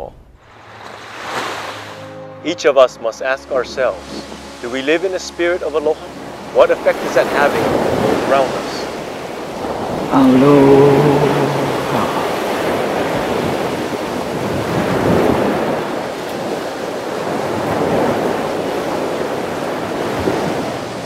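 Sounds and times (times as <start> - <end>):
ocean waves washing in: 0.3 - 2.2, 3.2 - 21.0.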